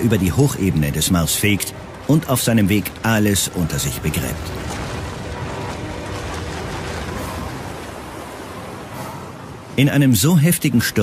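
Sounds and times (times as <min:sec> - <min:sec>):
low rumble: 0:00.0 - 0:09.7
storm wind rushing: 0:00.0 - 0:09.8.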